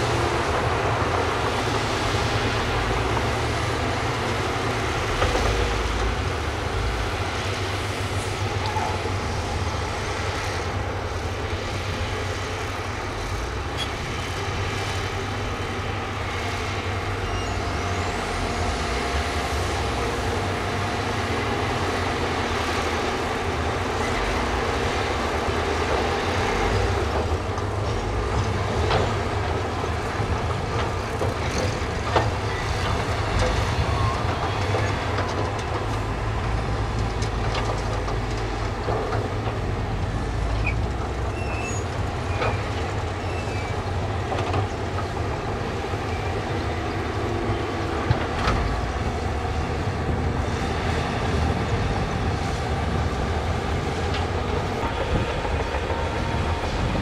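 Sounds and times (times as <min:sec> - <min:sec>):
bulldozer working: 0:00.0 - 0:57.0
dump truck engines running: 0:00.0 - 0:57.0.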